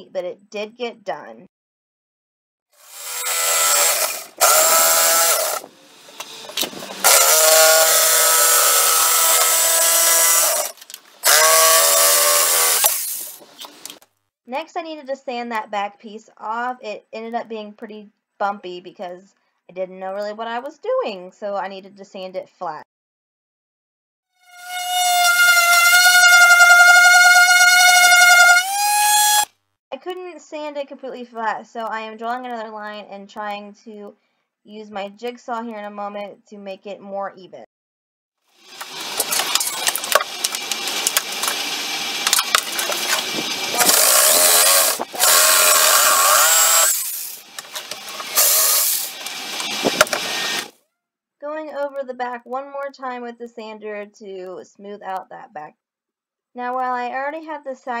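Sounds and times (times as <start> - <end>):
jigsaw sawing through wood: 2.8 - 5.7, 6.9 - 13.4, 24.6 - 29.5, 38.7 - 50.8
electric sander whining on wood: 2.9 - 13.0, 24.5 - 29.4, 38.7 - 50.7.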